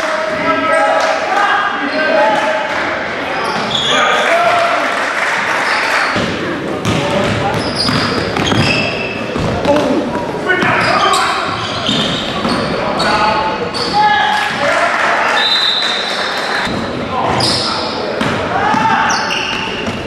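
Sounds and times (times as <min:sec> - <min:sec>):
sneaker squeaks: 0:03.4 - 0:04.2, 0:05.6 - 0:09.9, 0:10.6 - 0:14.6, 0:15.4 - 0:20.0
ball bouncing on wooden floor: 0:06.2 - 0:08.8.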